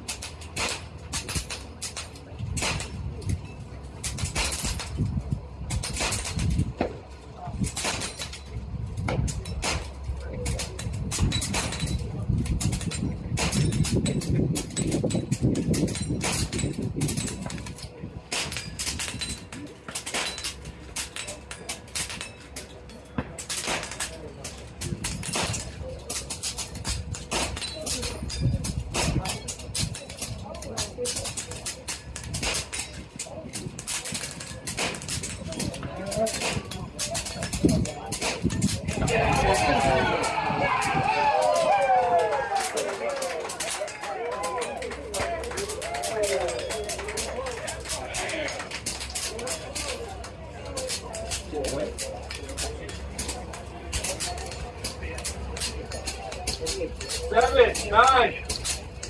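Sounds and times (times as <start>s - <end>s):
air rifles firing: 23.1s - 58.8s.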